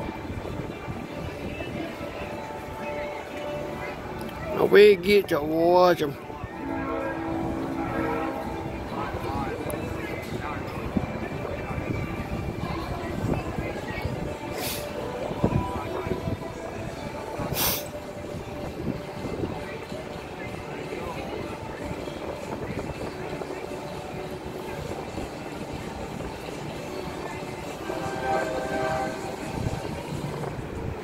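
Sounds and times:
voices: 0.0s - 31.0s
distant trucks rumbling: 6.1s - 13.6s
short hiss: 14.6s - 14.9s, 17.5s - 17.9s.

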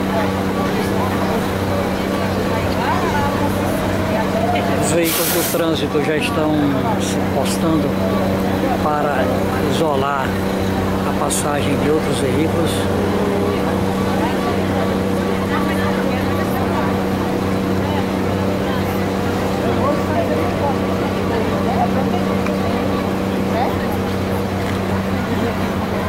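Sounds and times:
people talking in street: 0.0s - 26.0s
vehicle engine idling: 0.0s - 26.0s.

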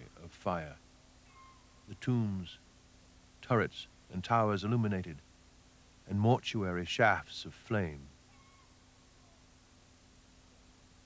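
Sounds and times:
faint steady hum: 0.0s - 11.0s
faint gliding squeaks: 1.3s - 2.0s, 8.3s - 9.4s.

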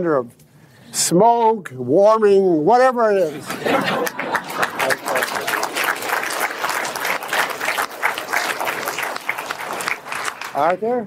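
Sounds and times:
audience applauding: 3.3s - 11.0s.

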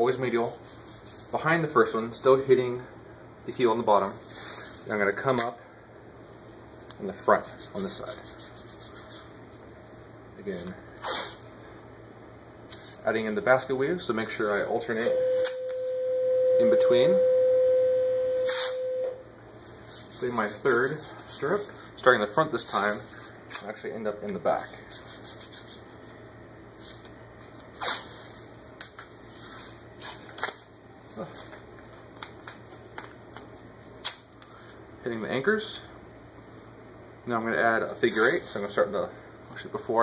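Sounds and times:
tape rubbing and scraping: 7.3s - 9.3s, 11.0s - 11.4s, 26.8s - 30.7s
tape peeling: 26.8s - 34.5s
tape ripping off roll: 27.7s - 29.1s.

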